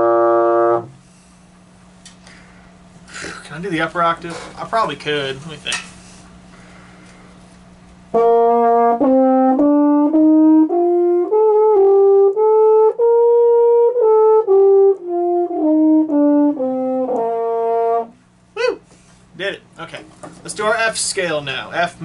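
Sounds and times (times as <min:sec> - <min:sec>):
baritone horn playing a scale: 0:00.0 - 0:01.0, 0:08.1 - 0:18.2.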